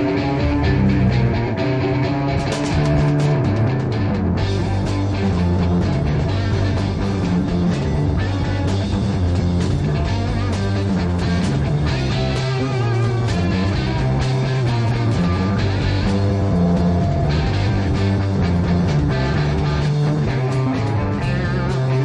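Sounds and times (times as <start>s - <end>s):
electric bass: 0.0s - 22.0s
electric guitar: 0.0s - 22.0s
drum and cymbal hits: 2.3s - 22.0s.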